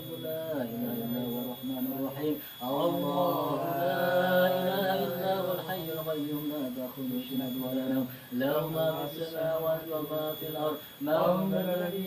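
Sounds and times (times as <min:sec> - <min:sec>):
men chanting: 0:00.0 - 0:12.0.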